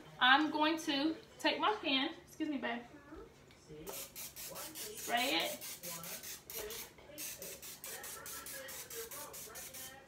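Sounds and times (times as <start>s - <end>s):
aerosol spray hissing: 3.9s - 10.0s.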